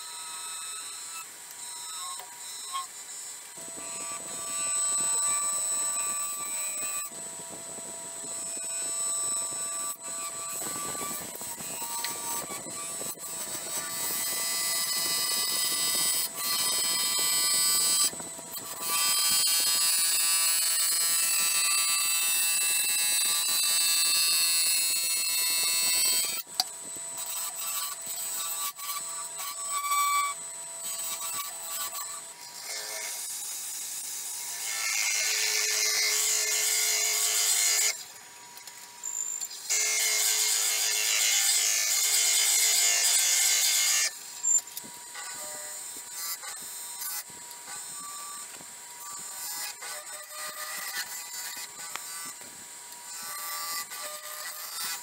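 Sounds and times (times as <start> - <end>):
lathe gouge cutting: 0.0 - 38.0.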